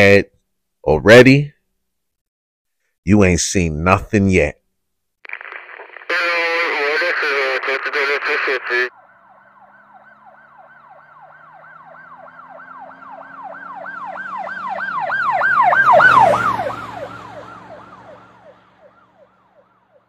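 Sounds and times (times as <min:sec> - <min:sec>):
siren yelping: 0:08.7 - 0:20.0.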